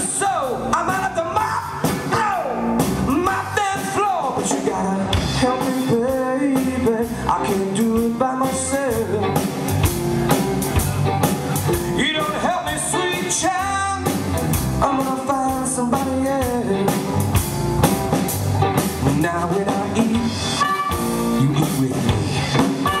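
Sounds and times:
electric blues band: 0.0 - 23.0
wailing lead guitar: 0.0 - 23.0.

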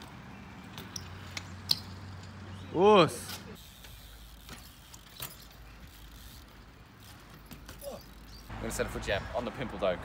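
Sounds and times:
bike tyres rolling on concrete: 0.0 - 10.0.

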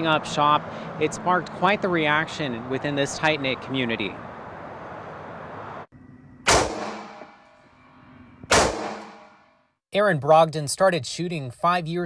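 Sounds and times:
rifle shots: 6.5 - 7.4, 8.5 - 9.4.

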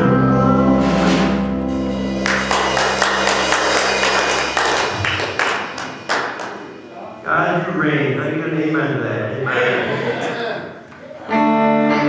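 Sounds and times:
band held chord and bass: 0.0 - 9.4, 11.3 - 12.0.

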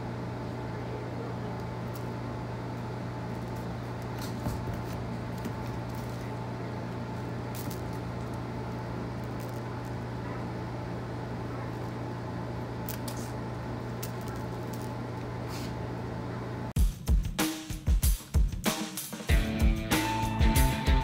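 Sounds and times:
low machine hum: 0.0 - 16.8.

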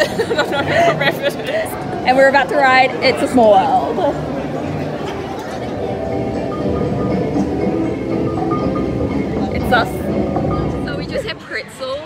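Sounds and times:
faint music: 0.0 - 12.0
indistinct voices: 0.0 - 12.0.

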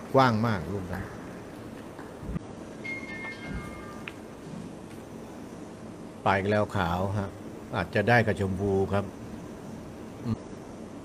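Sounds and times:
soft low thumps: 1.9 - 2.5
faint high descending tones: 2.8 - 4.2.

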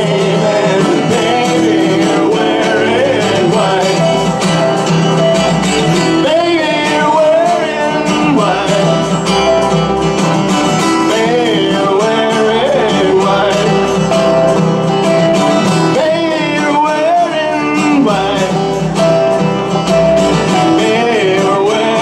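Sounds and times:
electric guitar melody: 0.0 - 22.0
upright bass: 0.0 - 22.0.

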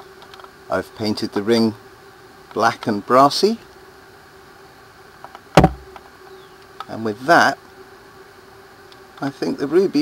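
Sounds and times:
sharp knock of plastic toy: 5.6 - 5.9.

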